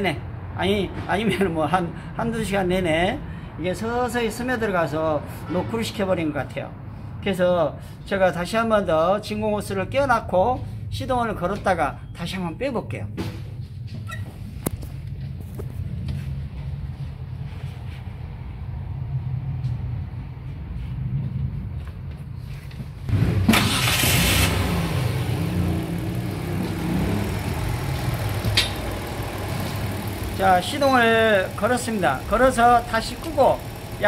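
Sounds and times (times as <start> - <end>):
car engine starting and running: 22.9 - 34.0
low steady rumble: 24.7 - 34.0.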